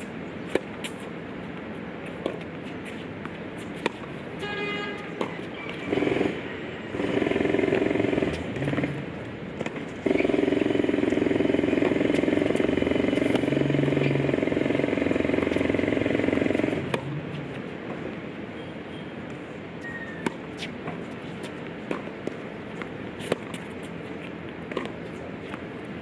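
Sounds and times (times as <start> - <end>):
tennis ball striking racquet: 0.0 - 5.8, 9.5 - 10.0, 11.6 - 18.2, 19.3 - 26.0.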